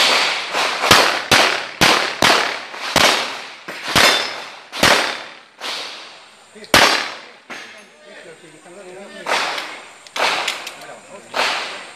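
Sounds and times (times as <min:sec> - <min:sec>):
handgun shots with echo: 0:00.0 - 0:05.3.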